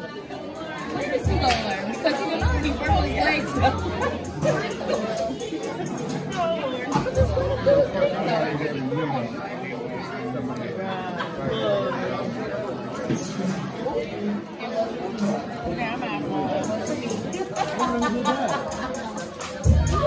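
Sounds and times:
children and adults chattering: 0:00.0 - 0:20.0
music playing: 0:00.8 - 0:08.0, 0:16.6 - 0:20.0.

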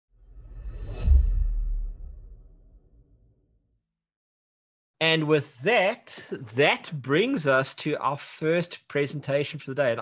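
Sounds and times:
whoosh: 0:00.2 - 0:03.3.

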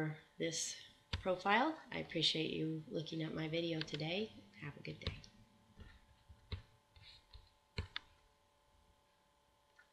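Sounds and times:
faint steady hum: 0:00.0 - 0:09.9.

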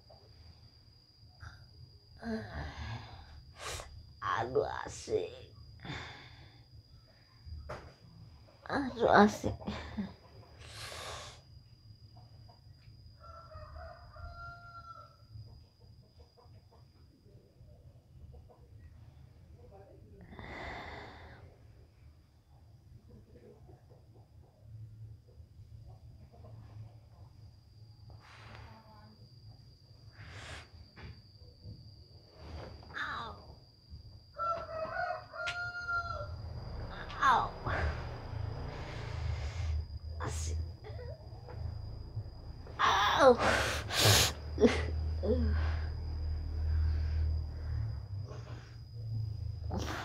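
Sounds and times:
rooster crowing: 0:13.2 - 0:15.5, 0:34.3 - 0:39.2.

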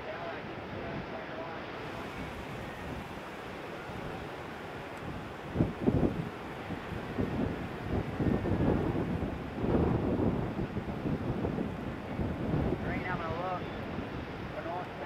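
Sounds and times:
ocean surf: 0:00.0 - 0:15.0
wind buffeting microphone: 0:01.8 - 0:14.8.

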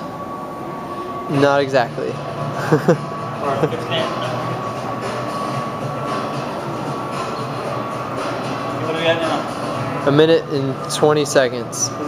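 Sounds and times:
indoor hum: 0:00.0 - 0:12.0
person laughing: 0:02.6 - 0:03.8.

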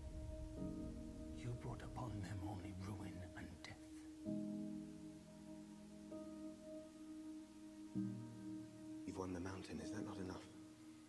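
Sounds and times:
music drone: 0:00.0 - 0:02.4.

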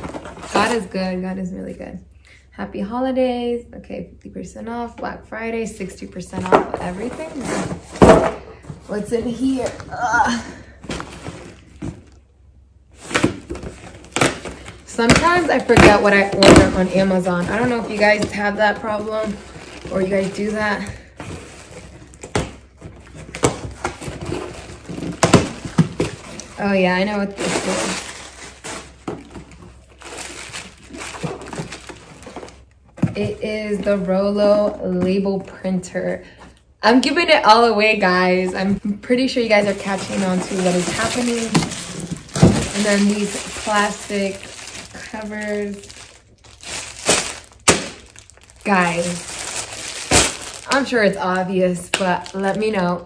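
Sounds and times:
plastic covers crinkling: 0:06.4 - 0:12.2, 0:12.9 - 0:35.3, 0:38.0 - 0:53.0
plastic air-pillow packing rustling: 0:12.9 - 0:34.6, 0:39.3 - 0:52.8.

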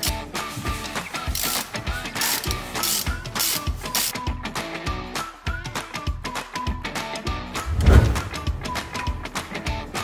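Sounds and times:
background music with beat: 0:00.0 - 0:10.0
ratchet wrench clicking: 0:01.2 - 0:04.1.

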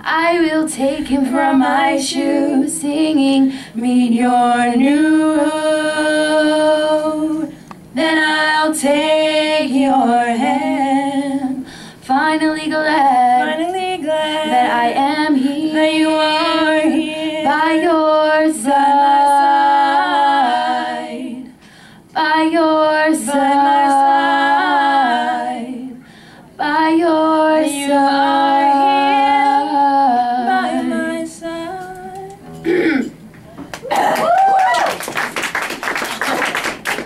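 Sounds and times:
two women singing a cappella: 0:00.0 - 0:32.4.

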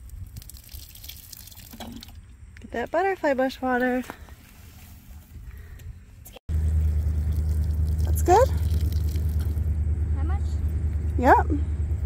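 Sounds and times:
wind rumbling on microphone: 0:00.0 - 0:03.0.

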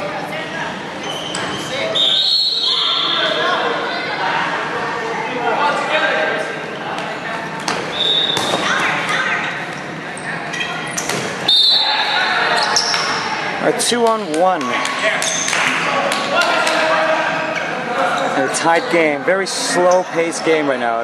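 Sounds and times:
dodgeball smacks: 0:07.6 - 0:08.9, 0:11.0 - 0:11.4.

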